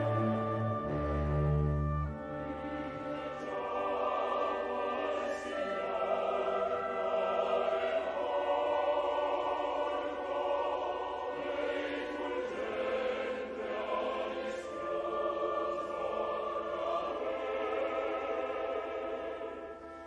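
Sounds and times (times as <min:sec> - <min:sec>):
opera chorus with orchestra: 0:00.0 - 0:20.0.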